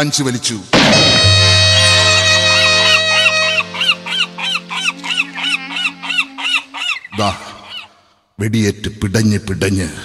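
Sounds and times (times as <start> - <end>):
sustained harmonium notes: 1.0 - 6.7
honking bird-like calls: 1.0 - 8.2.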